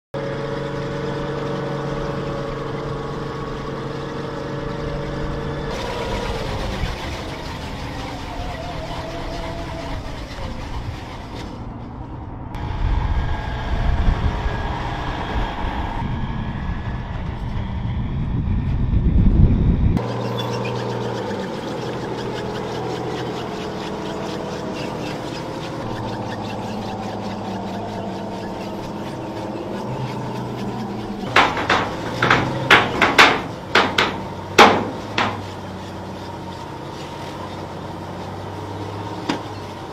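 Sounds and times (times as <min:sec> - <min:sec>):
truck engine running: 0:00.2 - 0:18.2, 0:20.0 - 0:39.9
tracked vehicle engines running: 0:00.2 - 0:39.9
fast clatter: 0:05.7 - 0:12.0, 0:20.0 - 0:39.9.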